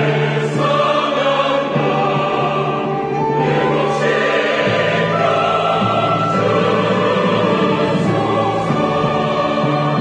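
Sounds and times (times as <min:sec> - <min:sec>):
choir singing held chords: 0:00.0 - 0:10.0
instrumental accompaniment: 0:00.0 - 0:10.0.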